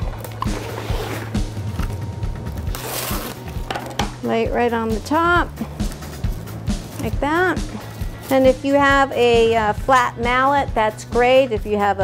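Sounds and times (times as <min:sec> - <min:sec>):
background music: 0:00.0 - 0:12.0
cling wrap tearing: 0:02.7 - 0:03.5.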